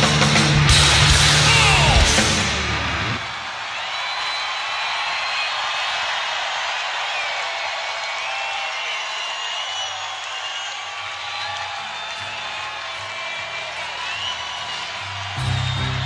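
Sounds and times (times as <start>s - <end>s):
heavy metal song: 0.0s - 3.3s
crowd cheering and whooping: 0.6s - 16.0s
clapping: 3.8s - 16.0s
high whistles: 8.2s - 12.4s, 13.3s - 16.0s.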